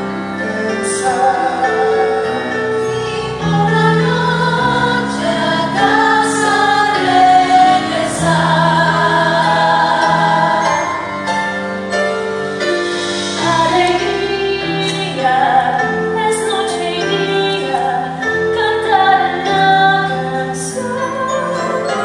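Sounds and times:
choir singing slow song: 0.0 - 11.2, 13.2 - 22.0
instrumental accompaniment: 0.0 - 22.0.

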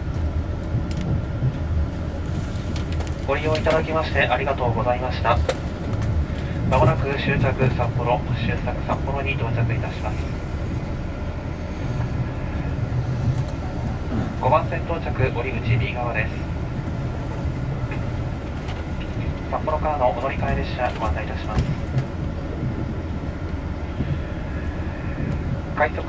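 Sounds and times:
train engine rumble: 0.0 - 26.0.

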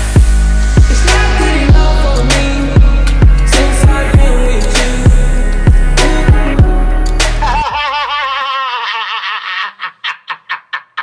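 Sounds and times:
man laughing: 7.3 - 11.0.

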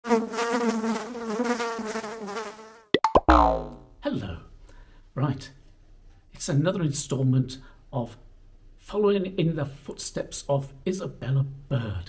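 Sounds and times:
mosquito buzzing: 0.0 - 2.9
falling tone: 3.0 - 3.9.

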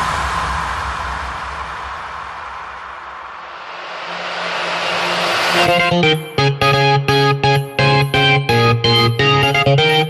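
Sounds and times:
white-noise riser: 0.0 - 6.5
synth chords over low bass: 4.1 - 10.0.

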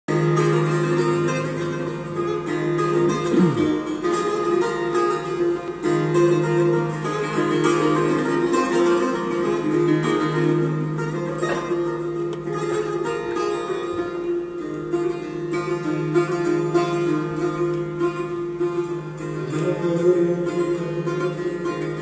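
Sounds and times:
plucked lute melody: 0.1 - 22.0.

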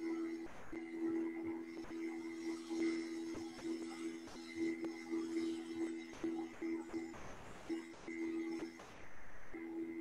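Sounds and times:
faint low droning music: 0.0 - 10.0.

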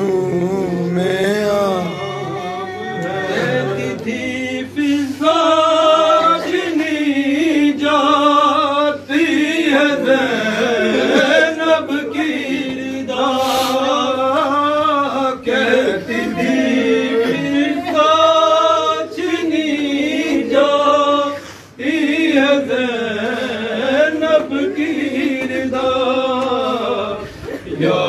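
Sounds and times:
man chanting a lament: 0.0 - 28.0.

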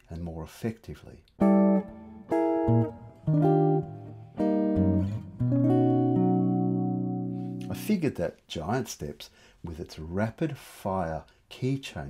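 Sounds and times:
guitar chords: 1.4 - 8.1.

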